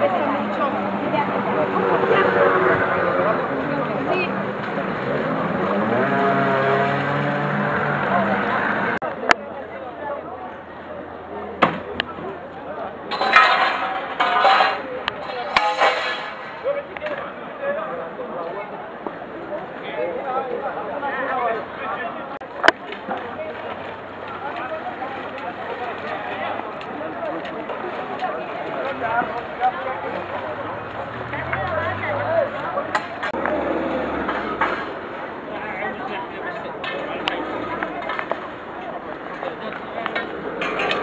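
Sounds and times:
outdoor background: 0.0s - 41.0s.

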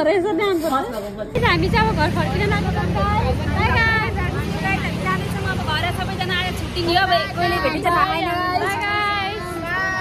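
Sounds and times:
women talking: 0.0s - 10.0s.

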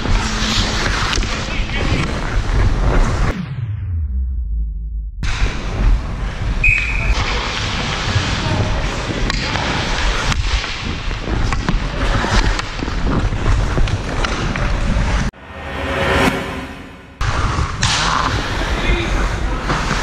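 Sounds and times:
skate blades scraping ice: 0.0s - 3.2s, 7.1s - 15.2s.

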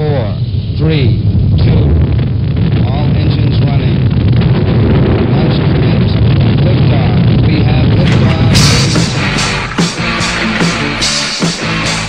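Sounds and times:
rocket engines rumbling: 0.0s - 12.0s.

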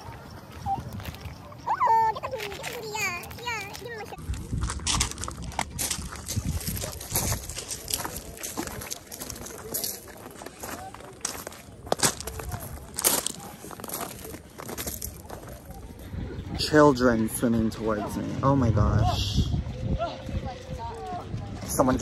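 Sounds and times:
footsteps crunching on pebbles: 0.0s - 16.2s
faint voices: 0.0s - 22.0s.

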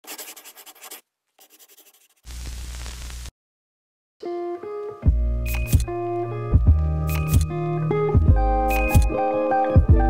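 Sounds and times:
pen scratching on paper: 0.0s - 2.3s.

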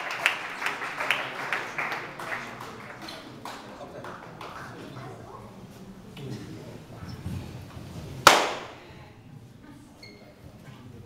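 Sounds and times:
sharp loud crack: 8.3s - 8.8s.

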